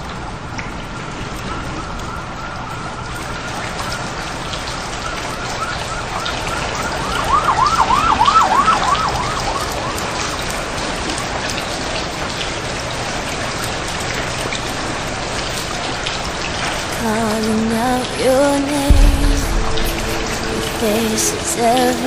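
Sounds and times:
wavering siren-like tone: 1.3 - 10.6, 18.9 - 22.0
steady rain hiss: 8.4 - 22.0.

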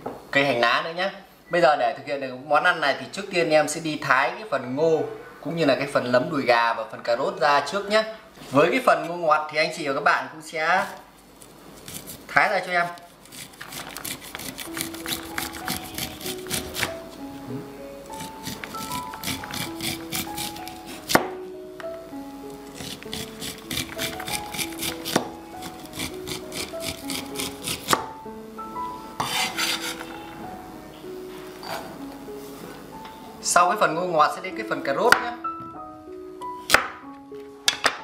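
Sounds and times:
light background music: 0.3 - 11.2, 11.8 - 38.0
knife rasping corn kernels: 11.4 - 16.9, 18.1 - 21.2, 22.7 - 28.0, 29.2 - 30.1.

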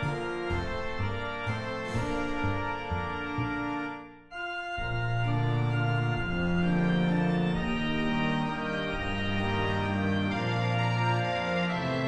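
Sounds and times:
reed organ playing chords: 0.0 - 12.0.

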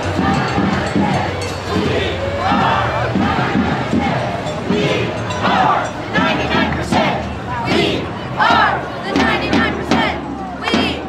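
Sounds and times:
crowd chanting and shouting: 0.0 - 11.0.

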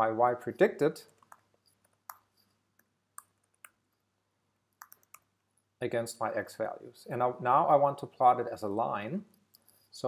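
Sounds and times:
computer keyboard keystrokes: 4.8 - 5.3.

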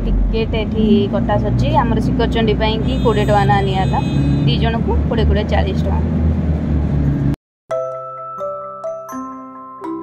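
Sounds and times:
bus engine droning: 0.0 - 7.4.

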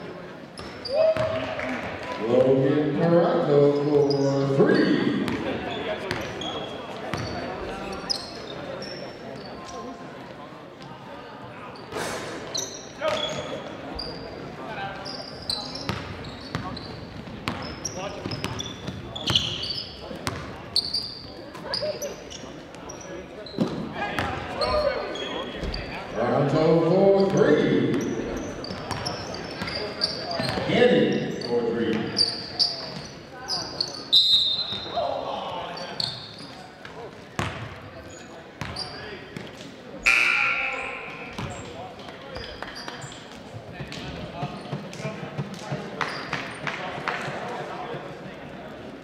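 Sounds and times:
basketball bouncing on hardwood court: 20.2 - 20.5, 41.4 - 41.6
people shouting in echoing hall: 40.0 - 41.4.

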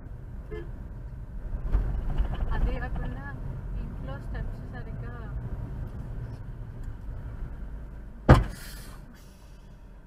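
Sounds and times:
loud sudden thump: 8.3 - 8.8
short hiss: 8.4 - 9.6.

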